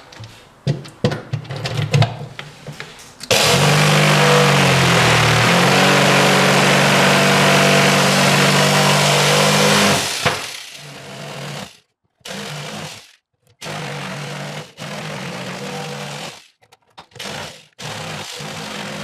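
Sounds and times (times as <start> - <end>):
jigsaw cutting wood: 3.3 - 16.5, 17.2 - 19.0.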